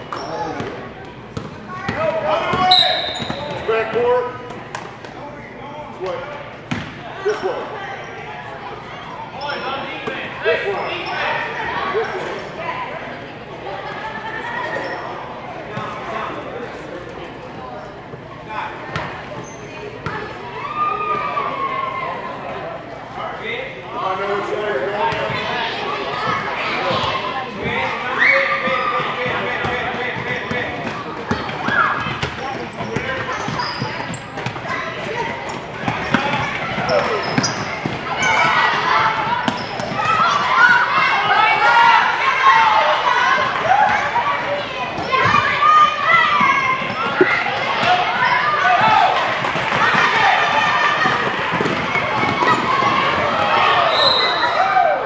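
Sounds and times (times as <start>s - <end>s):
chatter and shouts: 0.0s - 55.0s.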